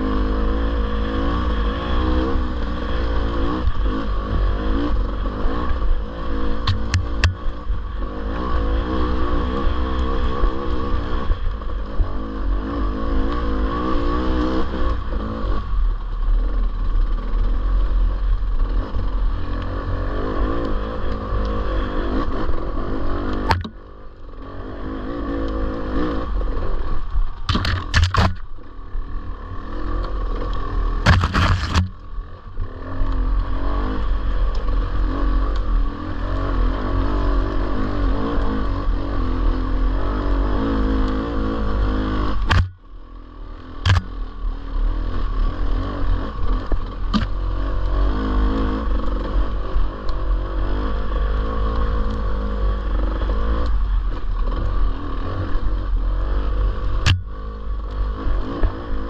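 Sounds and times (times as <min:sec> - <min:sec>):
dirt bike engine running: 0:00.0 - 0:59.0
sharp knocks and scrapes: 0:06.6 - 0:07.5, 0:27.4 - 0:28.5, 0:31.0 - 0:32.0, 0:42.4 - 0:42.7, 0:43.8 - 0:44.1.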